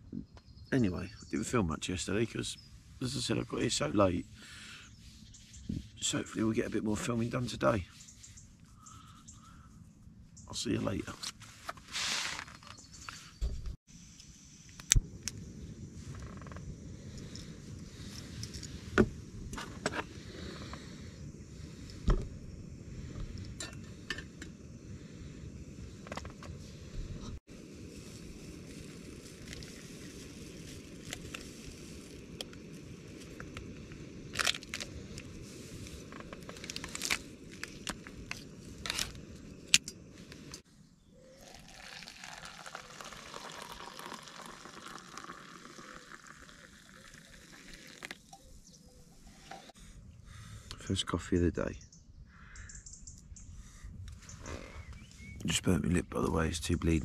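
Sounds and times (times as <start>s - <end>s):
hot water pouring into mug: 41.4s - 48.3s.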